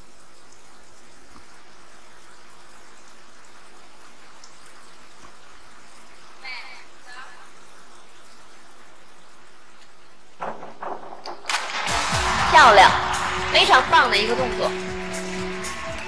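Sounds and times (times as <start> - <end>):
crowd and water noise: 0.8 - 10.4, 11.5 - 16.0.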